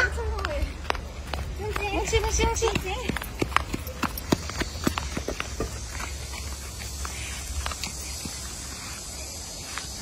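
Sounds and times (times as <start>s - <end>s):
footsteps on artificial turf: 0.0s - 10.0s.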